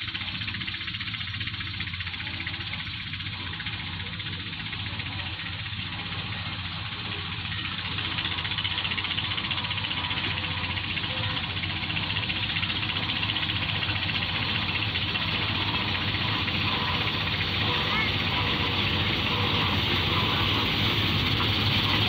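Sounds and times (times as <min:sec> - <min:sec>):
harvester engine running: 0:00.0 - 0:22.0.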